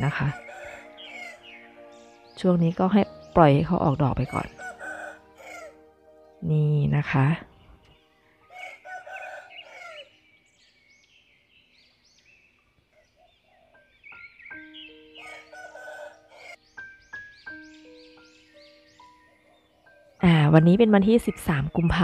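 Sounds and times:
rooster crowing: 0.0 - 1.4, 4.3 - 5.8, 8.4 - 10.1, 15.2 - 16.6
soft background music: 0.0 - 12.4, 13.0 - 22.0
small birds chirping: 0.0 - 22.0.

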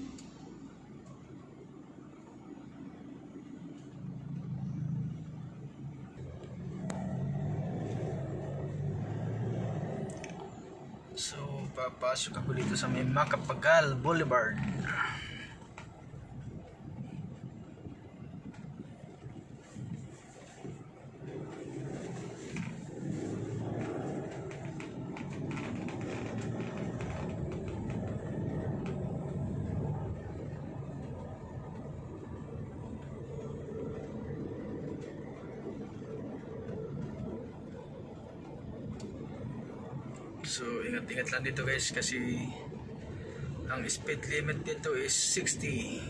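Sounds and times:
car engine and road noise: 0.0 - 46.0.

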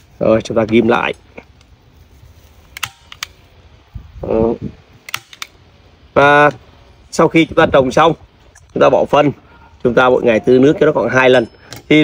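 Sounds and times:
hand stapler clicks: 2.7 - 3.4, 5.0 - 5.5.

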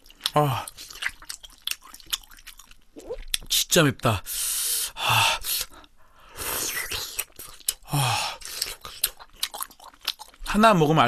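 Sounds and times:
person chewing food: 0.0 - 3.5, 6.6 - 10.5.

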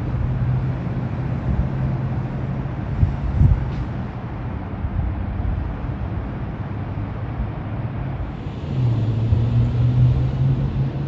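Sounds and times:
city traffic rumble: 0.0 - 11.0
vehicle engine humming: 0.0 - 11.0.

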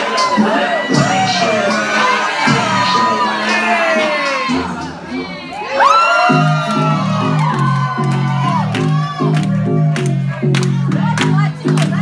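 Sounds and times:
crowd cheering and whooping: 0.0 - 11.2
loud dance music: 0.0 - 12.0
pulsing bass beat: 0.0 - 12.0.

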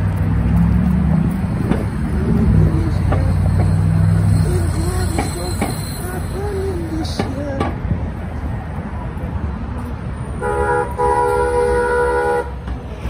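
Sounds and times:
city street traffic: 0.0 - 13.0.

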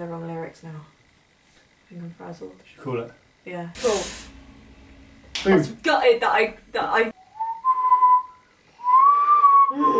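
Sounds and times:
person whistling: 7.2 - 9.9.

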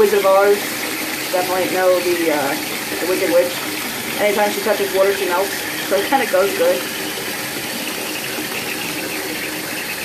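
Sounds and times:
bathtub faucet running: 0.0 - 10.0
water splashing into tub: 0.0 - 10.0.

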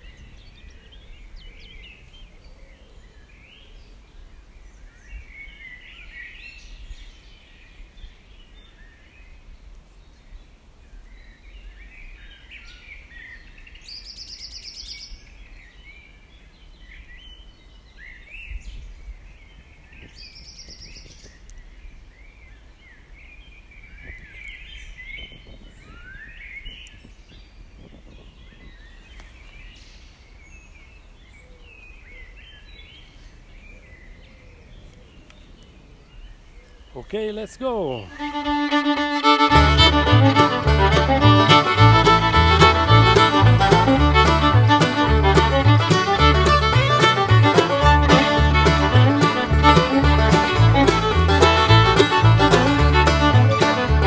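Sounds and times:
wind rumble on microphone: 0.0 - 2.2, 23.7 - 29.8
birds singing and chirping: 11.1 - 44.8.

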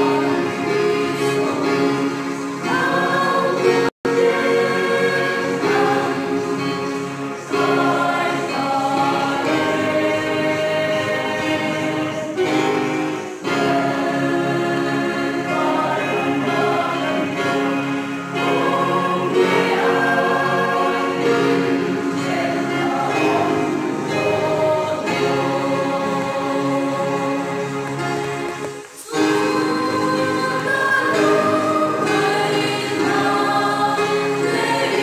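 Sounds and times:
choir singing a hymn: 0.0 - 35.0
electronic keyboard: 0.0 - 35.0.

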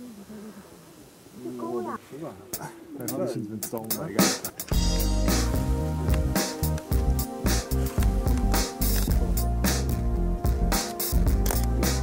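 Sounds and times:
people talking indistinctly: 0.0 - 9.8
sharp clicks: 3.6 - 4.8, 11.3 - 11.8.

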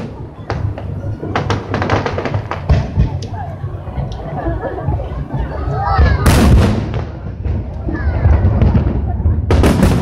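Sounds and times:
low rumble of fireworks: 0.0 - 10.0.

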